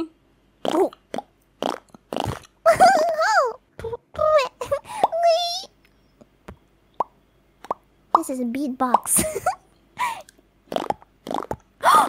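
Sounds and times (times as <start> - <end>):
lip-popping beatbox: 0.6 - 2.6, 10.7 - 11.7.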